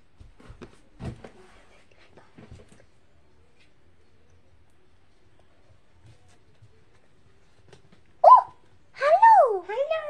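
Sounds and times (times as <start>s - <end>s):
child squeaking: 8.2s - 8.5s.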